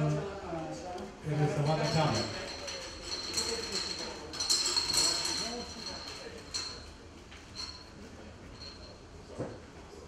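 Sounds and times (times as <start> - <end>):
balls clinking against glass bowl: 1.5 - 7.9, 8.5 - 9.0.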